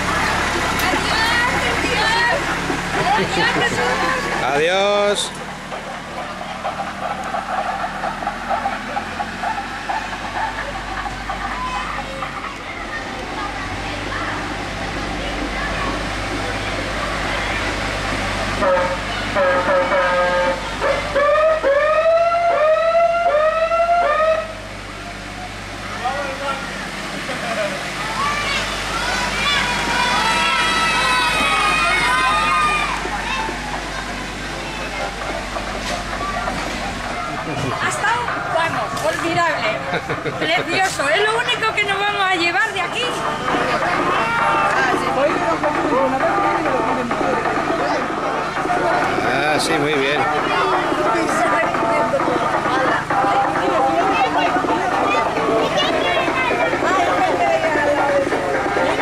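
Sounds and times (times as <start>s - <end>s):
tractor engine running: 0.0s - 59.0s
voices: 0.0s - 59.0s.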